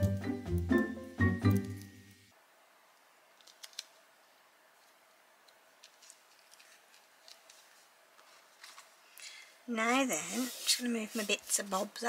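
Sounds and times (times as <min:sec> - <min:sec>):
music track: 0:00.0 - 0:02.3.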